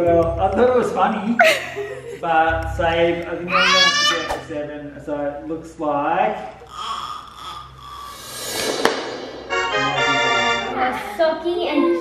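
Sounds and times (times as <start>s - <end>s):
faint background music: 0.0s - 8.5s, 9.8s - 12.0s
whoosh transition effect: 8.1s - 11.2s
sharp hit: 8.1s - 11.4s.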